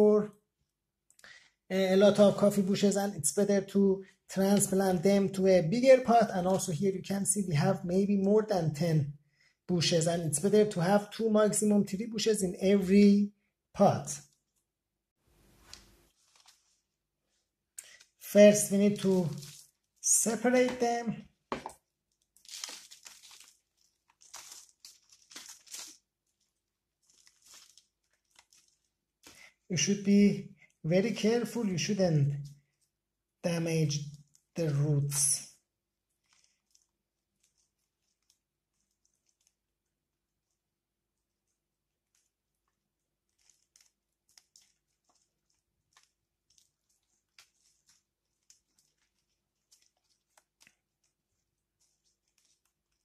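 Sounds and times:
leaves rustling: 18.9s - 19.9s, 22.4s - 28.9s
moist soil crackling and tearing: 18.9s - 20.1s, 22.1s - 29.3s, 36.1s - 40.6s, 42.0s - 53.0s
soil crumbling and roots tearing: 22.1s - 28.9s.

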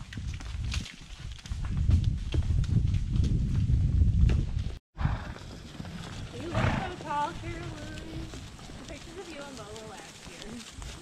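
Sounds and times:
horse hoofbeats: 0.0s - 11.0s.

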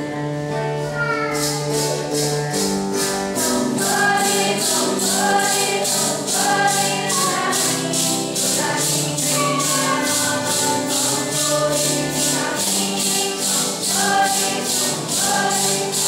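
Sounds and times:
maracas shaken: 0.9s - 16.0s
group singing a hymn: 3.3s - 16.0s.

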